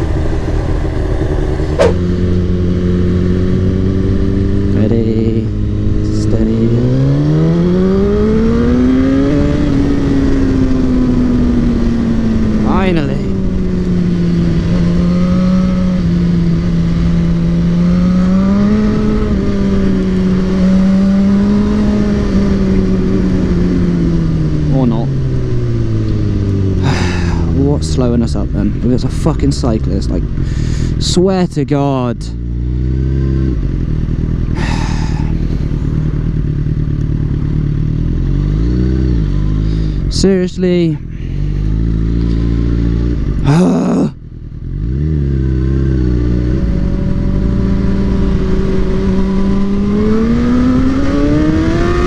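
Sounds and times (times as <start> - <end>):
motorcycle engine revving: 0.0 - 52.0.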